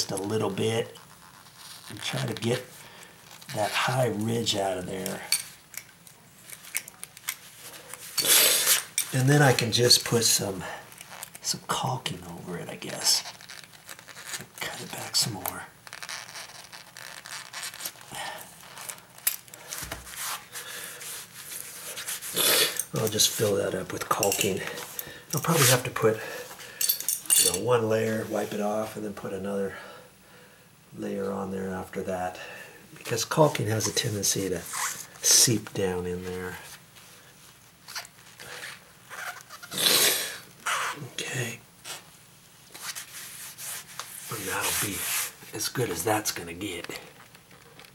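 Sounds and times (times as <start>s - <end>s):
rubbing rustle: 0.0s - 5.1s, 12.9s - 26.6s, 41.8s - 47.1s.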